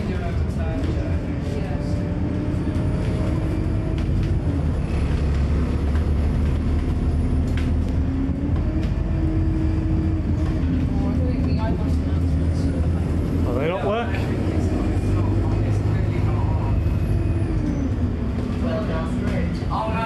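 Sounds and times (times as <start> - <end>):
bus drivetrain rumble: 0.0 - 20.0
road noise: 0.0 - 20.0.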